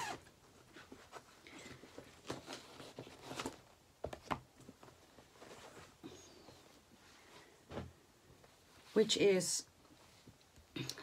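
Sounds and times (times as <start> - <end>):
fabric rustling: 4.7 - 9.1.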